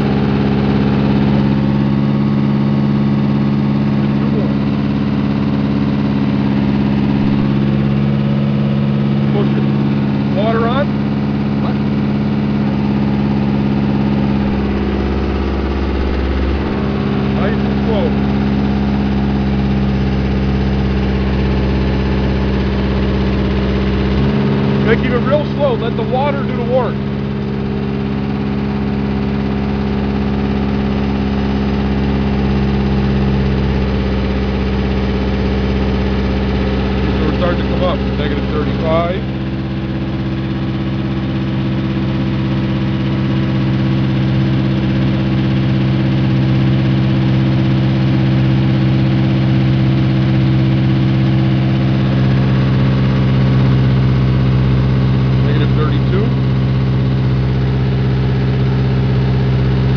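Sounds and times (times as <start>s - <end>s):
drill engine running under load: 0.0s - 59.9s.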